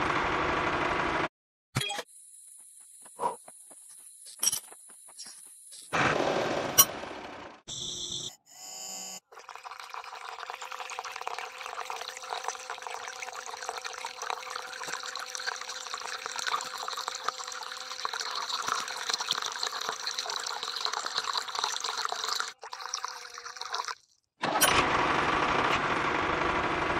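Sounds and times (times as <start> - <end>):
pump hum: 9.4 - 23.1
water splashing into basin: 9.4 - 24.1.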